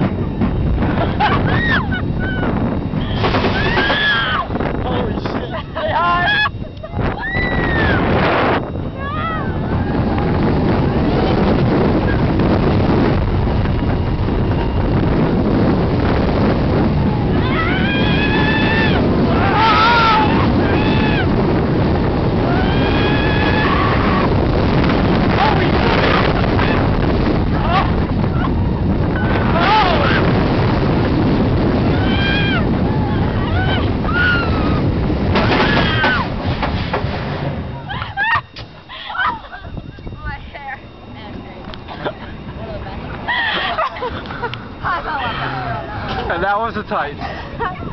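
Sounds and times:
wind rushing over microphone: 0:00.0 - 0:47.9
riders screaming: 0:01.2 - 0:04.5, 0:07.1 - 0:08.1, 0:17.1 - 0:21.6, 0:22.2 - 0:24.5, 0:27.5 - 0:30.4, 0:31.8 - 0:36.4.

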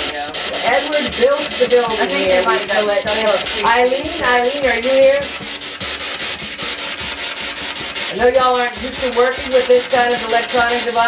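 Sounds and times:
chopped radio static: 0:00.0 - 0:11.0.

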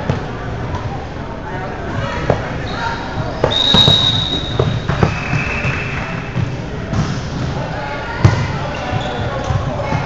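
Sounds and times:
players' voices and chatter: 0:00.0 - 0:10.0.

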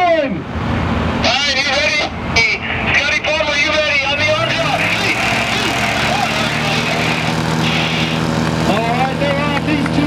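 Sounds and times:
plane engine and propeller: 0:00.4 - 0:10.0.

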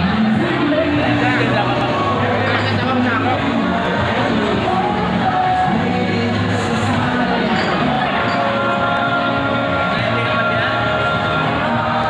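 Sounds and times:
music or group singing: 0:00.0 - 0:12.0
voices at a party: 0:00.0 - 0:12.0.

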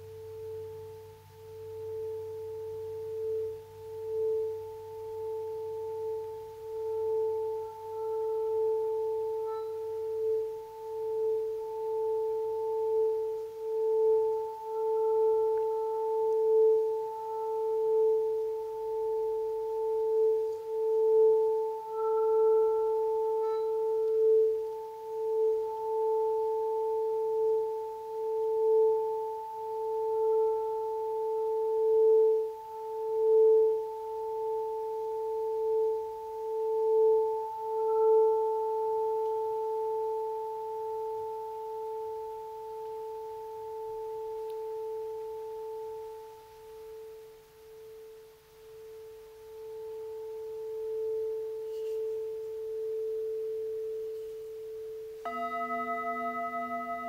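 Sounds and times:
singing bowl ringing: 0:00.0 - 0:57.0.

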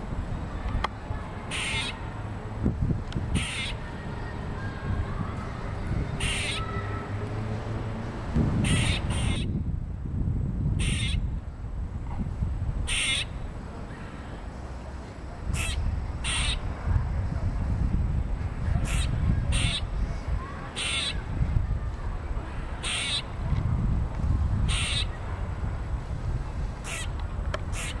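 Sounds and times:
squirrel alarm barks: 0:01.5 - 0:02.0, 0:03.4 - 0:03.8, 0:06.2 - 0:06.8, 0:08.6 - 0:09.5, 0:10.8 - 0:11.2, 0:12.9 - 0:13.4, 0:15.5 - 0:16.7, 0:18.8 - 0:19.9, 0:20.8 - 0:21.2, 0:22.8 - 0:23.3, 0:24.7 - 0:25.1, 0:26.8 - 0:27.1, 0:27.7 - 0:28.0
steady low rumble: 0:08.0 - 0:14.2, 0:21.2 - 0:28.0.

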